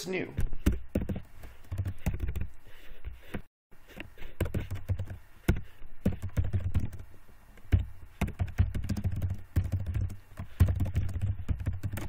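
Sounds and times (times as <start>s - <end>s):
typing on computer keyboard: 6.0s - 7.0s, 7.7s - 12.0s.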